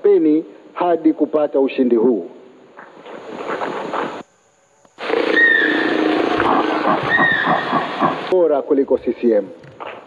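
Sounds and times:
dense rainforest animal calls: 5.0 - 9.4
falling whistled call: 5.2 - 8.2.

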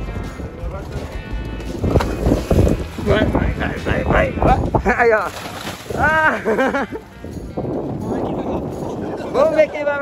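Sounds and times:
background music: 0.0 - 10.0
wind buffeting microphone: 0.0 - 10.0
loud water splashing: 5.0 - 6.6.

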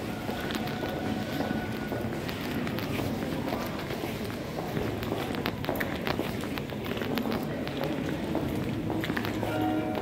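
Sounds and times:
concourse background noise: 0.0 - 10.0.

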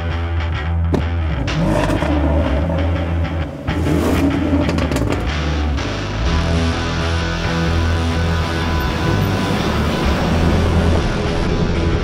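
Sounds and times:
car engine starting: 0.6 - 12.0
car engine revving: 0.9 - 12.0.

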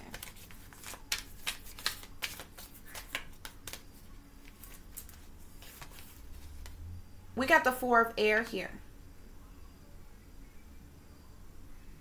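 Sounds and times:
cards being shuffled: 0.0 - 6.8.

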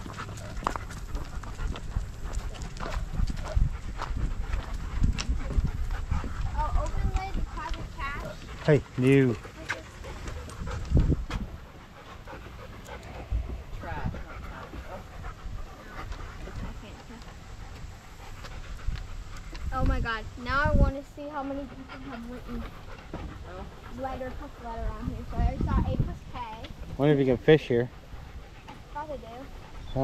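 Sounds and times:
dog panting: 0.0 - 30.0.

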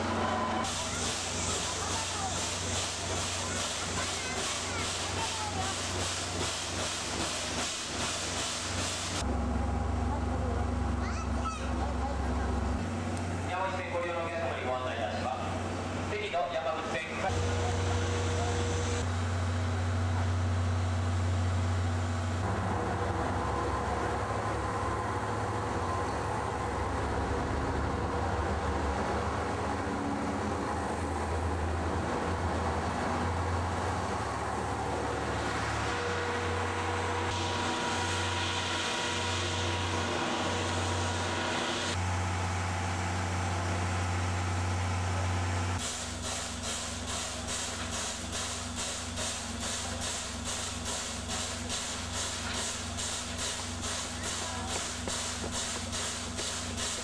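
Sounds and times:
steam locomotive chuffing: 0.0 - 9.4, 12.2 - 57.0
diesel railcar passing: 0.0 - 11.0, 11.8 - 45.8
low drone of trains: 0.0 - 57.0.

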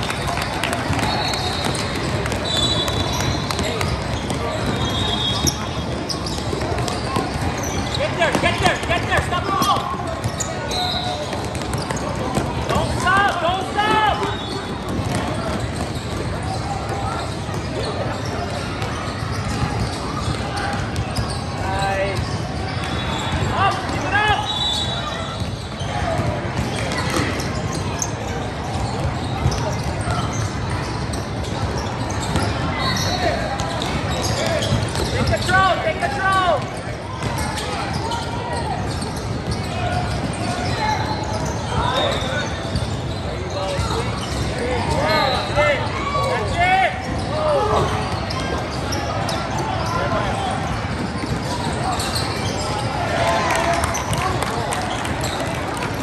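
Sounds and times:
murmur of spectators' voices: 0.0 - 56.0
sneakers squeaking: 0.0 - 56.0
basketball dribbling: 0.8 - 10.5, 11.2 - 13.4, 14.2 - 17.6.

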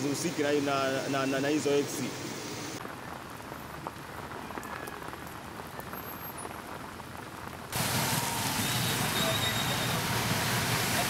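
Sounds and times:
rain on a wet road: 2.7 - 11.0
rain drops ticking: 2.8 - 11.0
loud steady rushing noise: 7.8 - 11.0.

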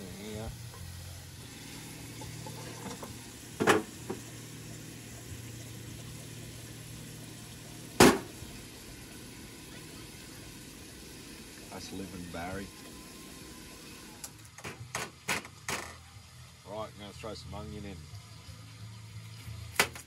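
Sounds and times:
bacon sizzling in a pan: 0.0 - 14.3
low stove hum: 0.0 - 14.9.

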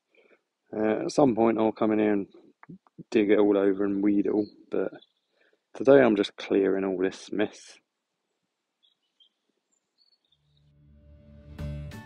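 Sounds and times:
high bird chirps: 4.2 - 5.5, 8.8 - 10.8.

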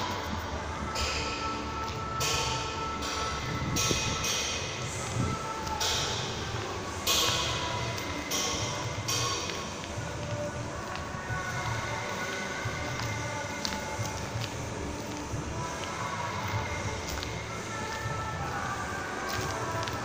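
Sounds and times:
faint music: 0.0 - 20.0
steady low rumble: 0.0 - 20.0.

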